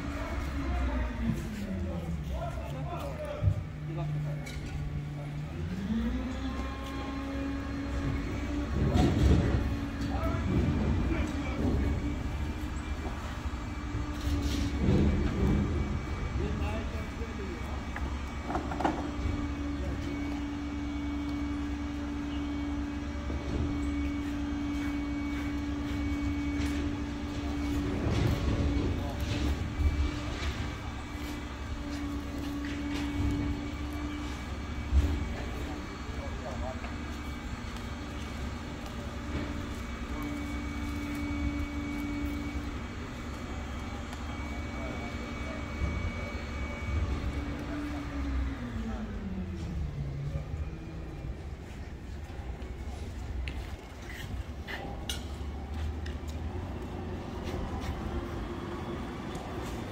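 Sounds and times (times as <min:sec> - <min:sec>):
engine-like hum: 0:00.0 - 0:59.9.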